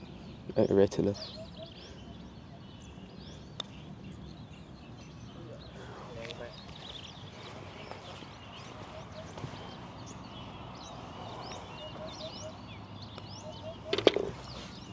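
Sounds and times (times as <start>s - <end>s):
birds chirping: 0.0s - 14.9s.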